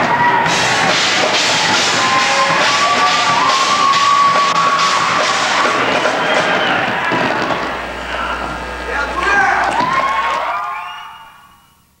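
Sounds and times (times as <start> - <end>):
audience cheering and shouting: 0.0 - 11.6.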